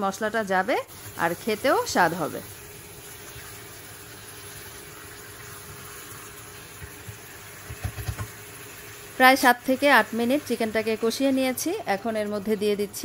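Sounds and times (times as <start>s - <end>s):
chicken sizzling in a pan: 0.2s - 12.2s.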